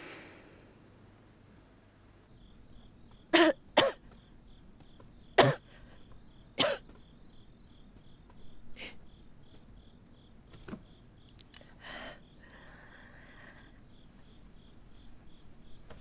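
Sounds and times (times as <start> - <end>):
crickets chirping: 2.3 - 16.0
person coughing: 3.3 - 4.1, 5.4 - 5.7, 6.6 - 6.9.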